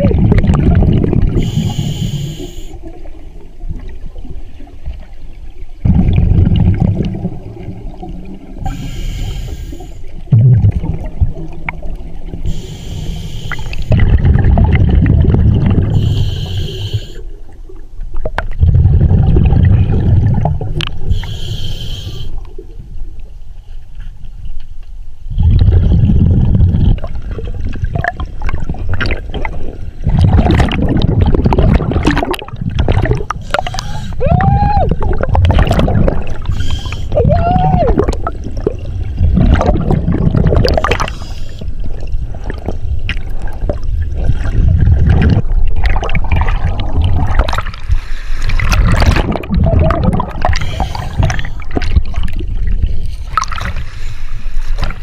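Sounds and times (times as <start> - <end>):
exhaled bubbles rumbling: 0.0 - 8.9, 10.0 - 12.8, 13.5 - 21.4, 25.2 - 53.9
regulator inhale hiss: 1.4 - 2.8, 8.6 - 10.1, 12.4 - 13.9, 15.9 - 17.3, 21.1 - 22.5, 33.4 - 34.2, 36.5 - 37.2, 40.8 - 41.8, 50.5 - 51.7, 53.8 - 54.8.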